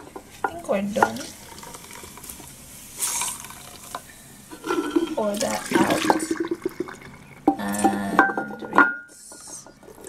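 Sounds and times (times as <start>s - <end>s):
water splashing into a mug: 4.6s - 7.2s.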